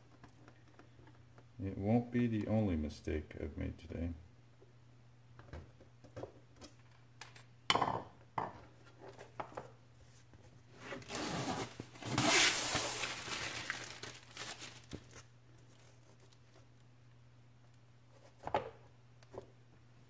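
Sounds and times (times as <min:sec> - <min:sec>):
plastic film peeling: 0:11.0 - 0:16.6.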